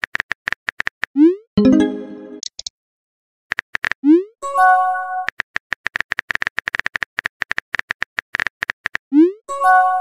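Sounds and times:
synthesized chord: 0:01.6 - 0:02.4.

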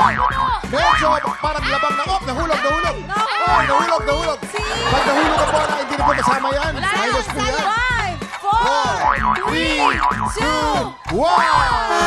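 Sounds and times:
people shouting excitedly: 0:00.4 - 0:12.0
show music: 0:01.2 - 0:12.0.

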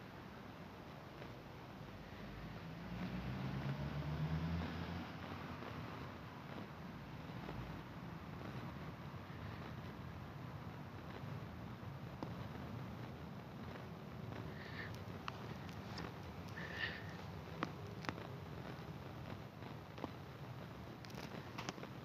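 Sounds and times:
distant airplane engine drone: 0:13.6 - 0:20.5.

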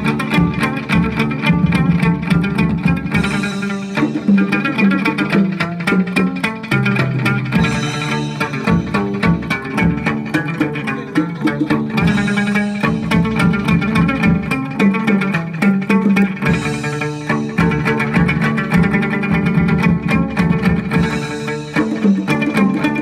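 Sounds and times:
plucked lute playing: 0:00.0 - 0:23.0.

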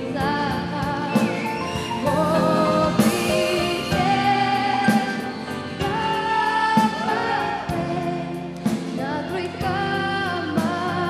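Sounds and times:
pop backing track: 0:00.0 - 0:11.0
woman singing into microphone: 0:00.0 - 0:11.0.

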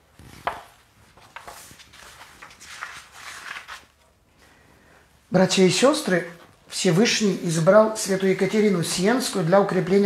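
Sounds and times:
book pages rustling: 0:00.0 - 0:04.6.

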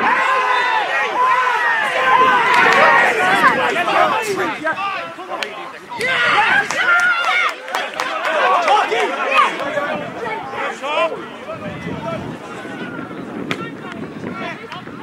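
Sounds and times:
distant players shouting: 0:00.0 - 0:15.0.

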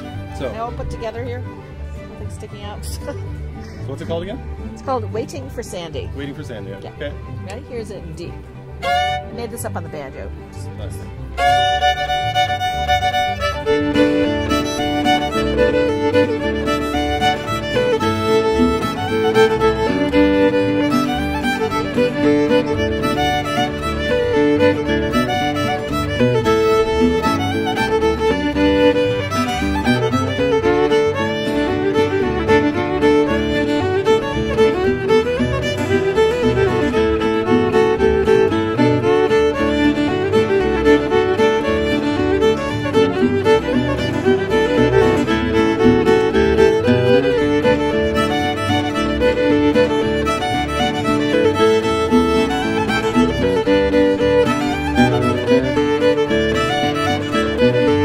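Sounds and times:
acoustic guitar strumming rhythm: 0:00.0 - 0:58.0
fiddle tune: 0:00.0 - 0:58.0.

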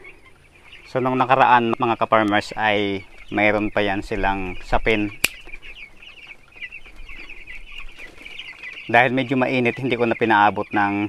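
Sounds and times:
chicks peeping: 0:00.0 - 0:11.0
sharp click: 0:05.2 - 0:05.5.

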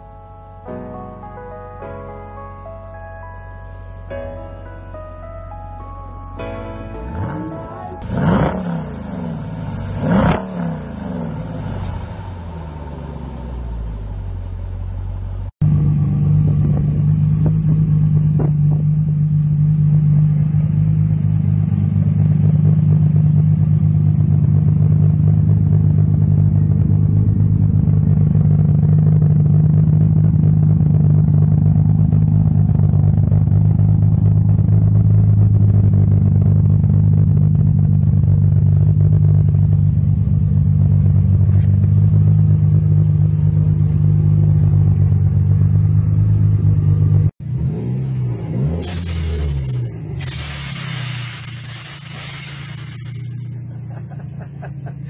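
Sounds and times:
car engine idling deep: 0:10.8 - 0:47.4
car exhaust blip: 0:15.6 - 0:44.8.

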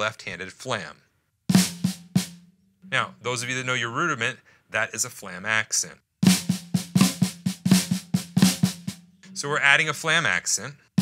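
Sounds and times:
snare drum flams: 0:01.5 - 0:02.4, 0:06.2 - 0:09.0.

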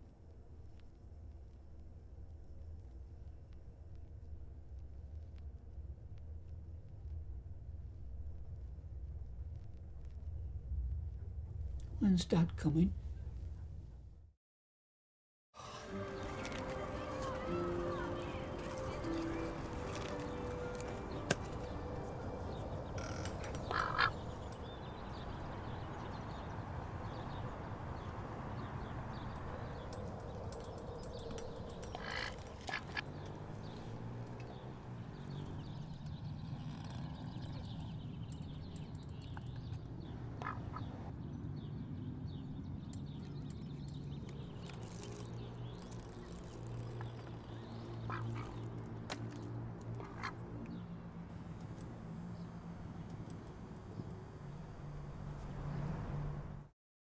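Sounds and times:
low steady outdoor background: 0:00.0 - 0:14.3, 0:15.6 - 0:56.7
duck quacking: 0:40.4 - 0:40.9.

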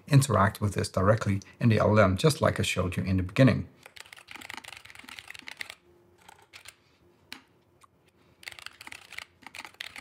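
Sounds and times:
computer keyboard typing: 0:03.8 - 0:07.4, 0:08.4 - 0:10.0.

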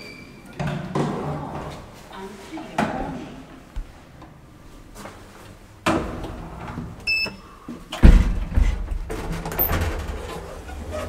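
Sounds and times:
elevator button beep: 0:07.1 - 0:07.4.

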